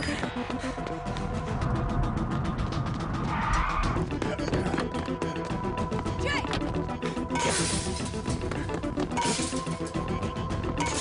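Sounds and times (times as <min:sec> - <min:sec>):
action music score: 0:00.0 - 0:11.0.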